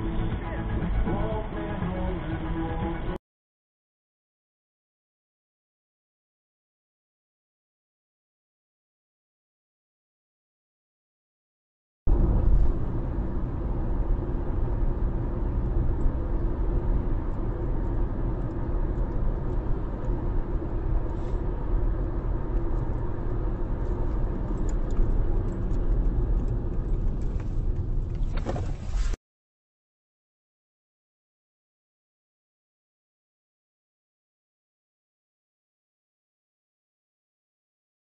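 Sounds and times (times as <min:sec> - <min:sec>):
car road and engine rumble: 0:12.1 - 0:29.2.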